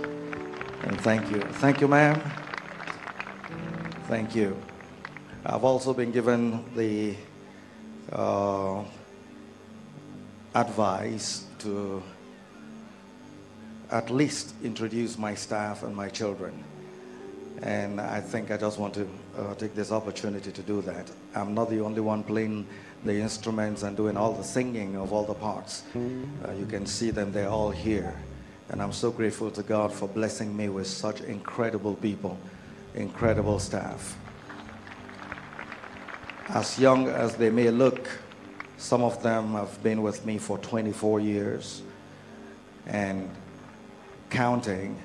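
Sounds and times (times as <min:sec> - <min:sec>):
band playing soft held chords: 0:00.0 - 0:45.0
soft keyboard music: 0:00.0 - 0:45.0
faint hall noise: 0:22.2 - 0:42.4.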